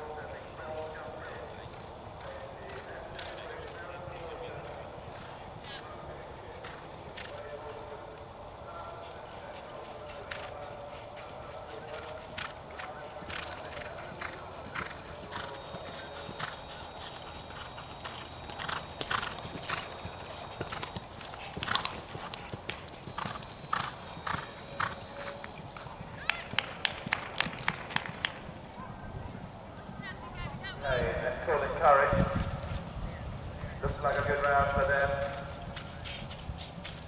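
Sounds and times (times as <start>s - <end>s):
horse hoofbeats galloping on turf: 0.3s - 28.6s, 33.8s - 37.0s.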